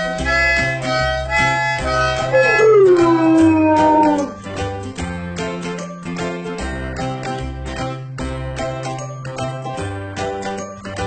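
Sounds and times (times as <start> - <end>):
background music: 0.0 - 11.0
large dog howling: 2.4 - 4.4.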